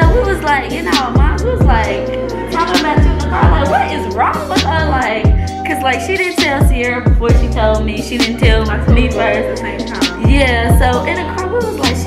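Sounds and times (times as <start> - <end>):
deep kick drum: 0.0 - 1.9, 2.8 - 3.8, 4.6 - 5.5, 6.4 - 7.8, 8.4 - 9.2, 10.2 - 11.0
lo-fi hip-hop music: 0.0 - 12.0
women's voices: 0.0 - 12.0.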